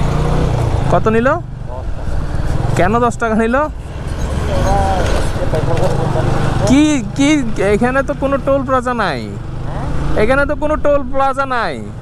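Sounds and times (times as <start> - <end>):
motorcycle engine rumble: 0.0 - 12.0.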